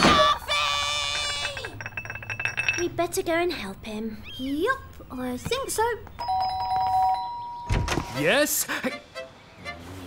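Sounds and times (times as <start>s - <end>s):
doorbell chime: 6.2s - 7.9s.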